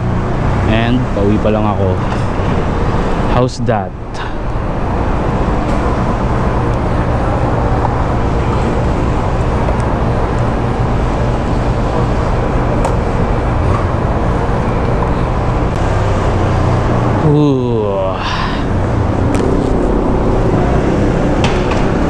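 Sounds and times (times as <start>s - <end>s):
scooter engine humming: 0.0s - 3.3s, 4.0s - 22.0s.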